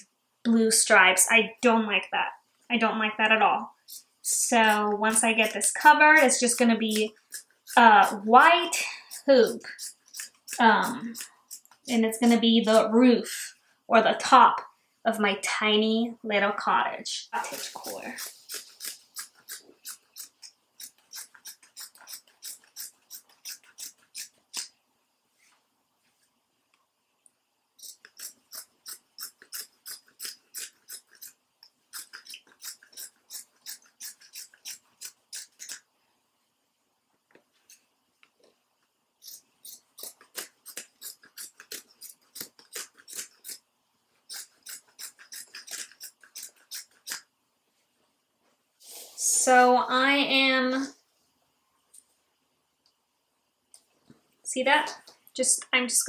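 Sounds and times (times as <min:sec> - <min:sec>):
scissors snipping fabric: 0:04.6 - 0:08.4, 0:09.0 - 0:12.8, 0:17.4 - 0:24.7, 0:27.8 - 0:35.8, 0:39.2 - 0:43.6, 0:44.3 - 0:47.2.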